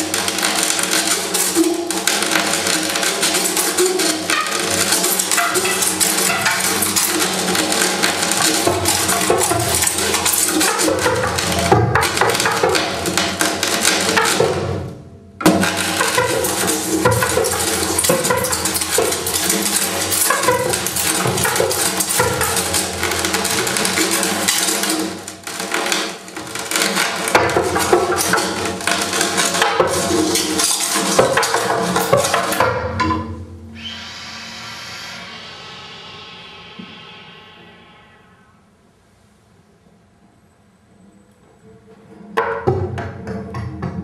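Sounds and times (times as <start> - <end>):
harsh clattering noise music: 0.0 - 38.8, 41.6 - 44.0
steady held tone: 16.2 - 25.4, 33.2 - 39.6.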